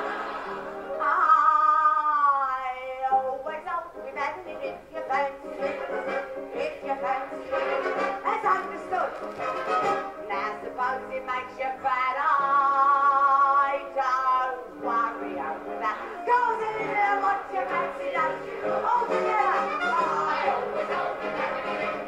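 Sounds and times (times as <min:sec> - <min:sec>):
theatre band playing: 0:00.0 - 0:01.4, 0:04.8 - 0:10.7, 0:14.8 - 0:22.0
woman singing comic song: 0:01.0 - 0:05.8, 0:10.2 - 0:20.8.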